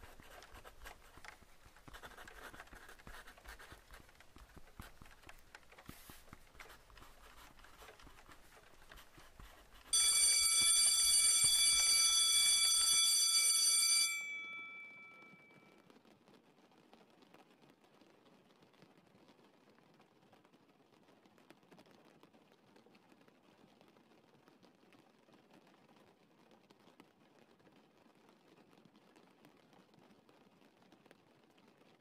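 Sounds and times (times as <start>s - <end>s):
school bell ringing: 9.9s - 15.6s.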